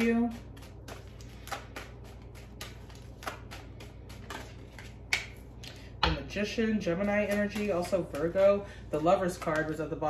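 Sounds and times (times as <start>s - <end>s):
cards being shuffled: 0.0s - 5.8s, 6.8s - 9.8s.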